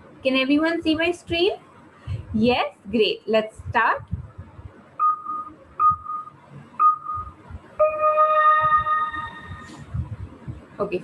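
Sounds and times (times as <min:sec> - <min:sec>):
short countdown beeps: 0:05.0 - 0:09.7
long multi-pitch tone: 0:05.0 - 0:10.2.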